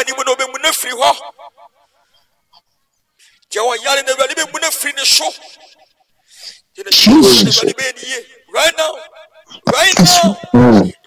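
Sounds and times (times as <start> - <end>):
man breathing: 6.2 - 6.7
man shouting prayer: 6.8 - 11.0.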